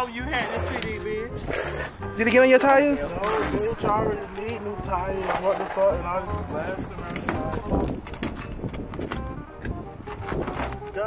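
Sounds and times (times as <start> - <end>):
indistinct voices talking: 0.0 - 11.0
music playing: 0.0 - 11.0.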